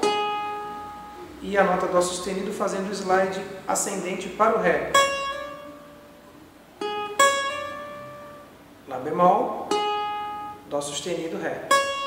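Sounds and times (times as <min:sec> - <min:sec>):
plucked cavaquinho notes: 0:00.0 - 0:12.0.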